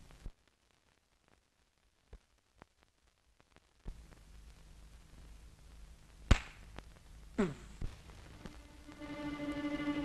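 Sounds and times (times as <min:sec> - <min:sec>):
film soundtrack hum and hiss: 0:00.0 - 0:10.0.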